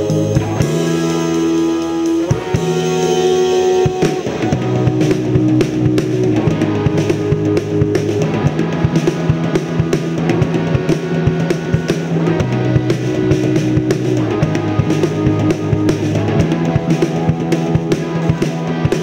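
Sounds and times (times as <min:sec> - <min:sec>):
drum kit steady beat: 0:00.0 - 0:19.0
sustained guitar chords: 0:00.0 - 0:19.0.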